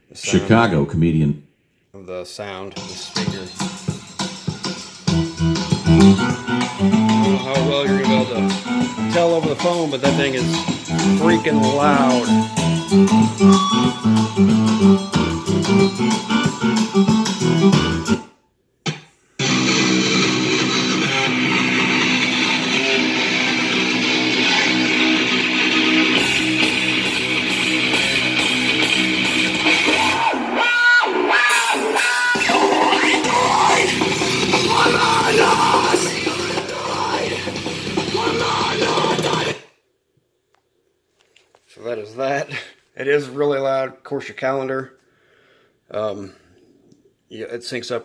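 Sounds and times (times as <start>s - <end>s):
rock music through fridge speaker: 2.7s - 39.7s.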